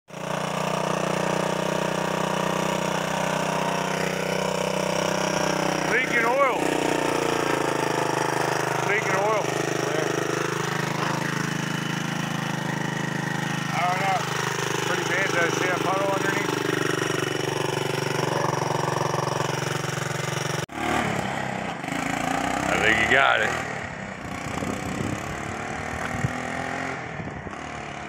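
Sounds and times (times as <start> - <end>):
engine idling: 0.1 - 23.5.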